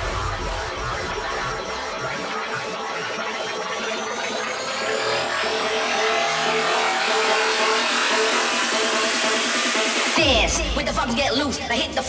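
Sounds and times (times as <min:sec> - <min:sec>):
rising noise sweep: 0:00.0 - 0:10.2
pulsing synth note: 0:00.0 - 0:10.3.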